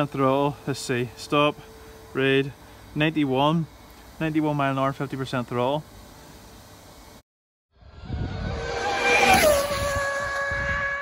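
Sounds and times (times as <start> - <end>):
high whine dropping in pitch: 7.8 - 11.0
rush of noise: 7.8 - 11.0.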